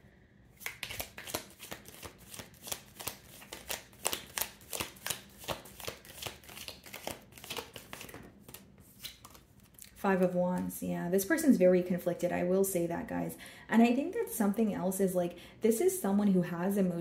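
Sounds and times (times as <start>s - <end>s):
cards being shuffled: 0.6s - 10.0s.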